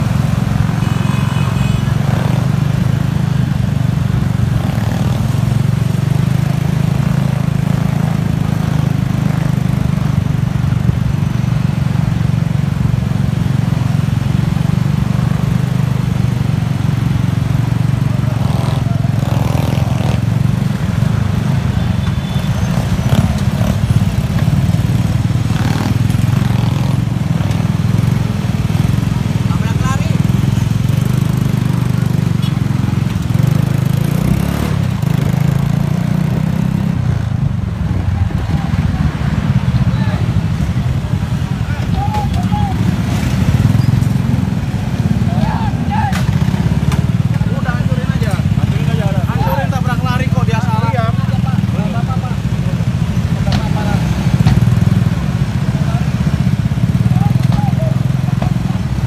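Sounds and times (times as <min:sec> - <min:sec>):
scooter engines droning: 0:00.0 - 0:59.0
people talking: 0:38.2 - 0:39.2, 0:39.8 - 0:40.4, 0:41.5 - 0:43.0, 0:45.2 - 0:46.3, 0:47.3 - 0:54.4, 0:55.6 - 0:56.2, 0:57.0 - 0:58.9.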